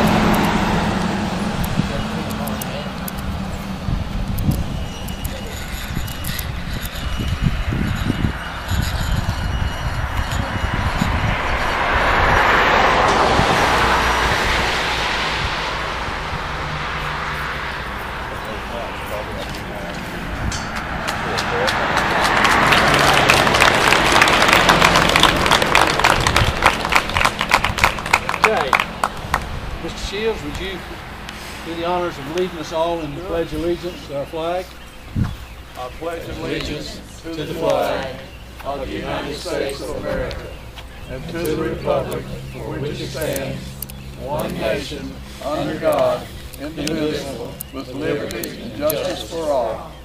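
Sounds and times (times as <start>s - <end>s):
road traffic hum: 0.0s - 50.0s
faint voices murmuring: 1.0s - 13.5s, 17.8s - 27.4s, 29.8s - 50.0s
crowd applauding: 21.0s - 29.5s.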